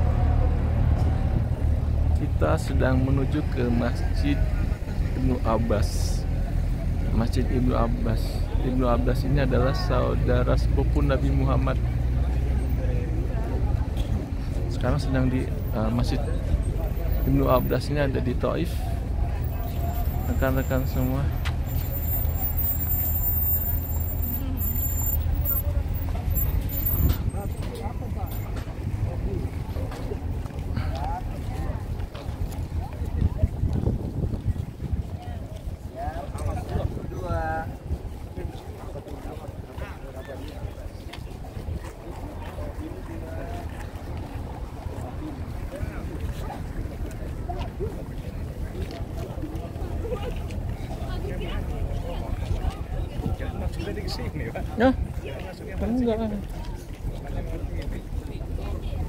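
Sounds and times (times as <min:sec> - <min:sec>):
crowd murmuring: 0:00.0 - 0:59.0
engine low rumble: 0:00.0 - 0:59.0
wind buffeting microphone: 0:26.0 - 0:39.8, 0:43.7 - 0:59.0.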